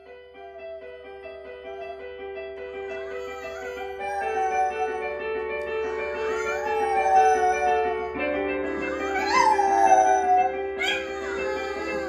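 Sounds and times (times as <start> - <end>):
electronic keyboard chords: 0.0 - 12.0
dog howling: 2.7 - 12.0.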